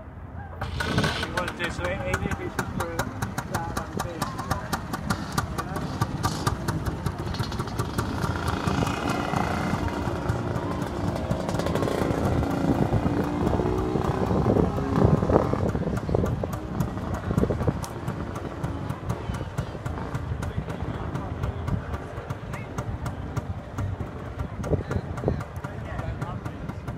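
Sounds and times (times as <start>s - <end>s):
scooter engine popping: 0.6s - 26.9s
people talking: 1.0s - 26.9s.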